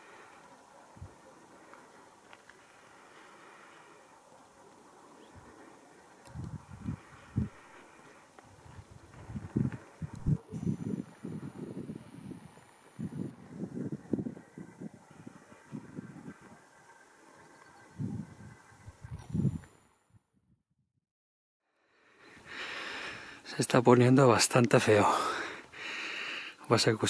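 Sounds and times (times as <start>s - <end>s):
gusty wind buffeting microphone: 6.2s - 16.8s, 17.4s - 19.7s.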